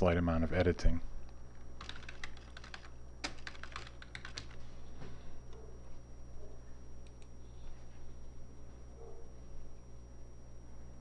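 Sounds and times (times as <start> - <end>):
low electrical hum: 0.0 - 11.0
computer keyboard typing: 1.8 - 4.6.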